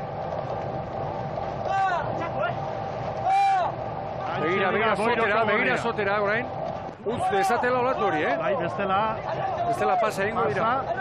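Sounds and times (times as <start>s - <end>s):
steady boat engine hum: 0.0s - 11.0s
shouted calls: 3.2s - 3.8s.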